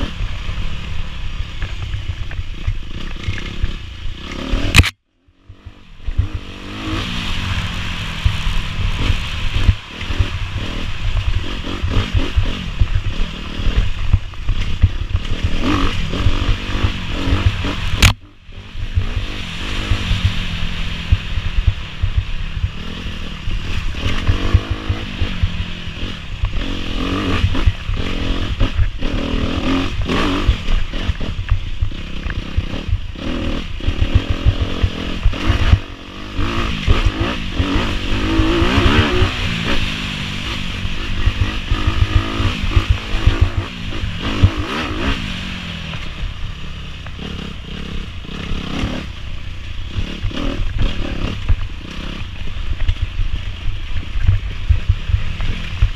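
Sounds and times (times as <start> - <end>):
dirt bike engine revving: 0.0 - 55.9
sharp click: 4.5 - 5.0, 17.5 - 18.2.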